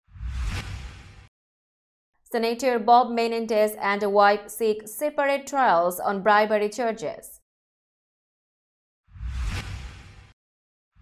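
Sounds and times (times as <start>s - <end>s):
whoosh: 0.1s - 1.3s, 9.1s - 10.4s.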